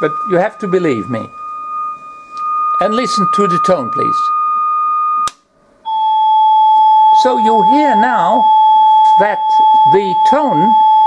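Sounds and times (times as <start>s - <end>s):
steady sine test tone: 0.0s - 11.0s.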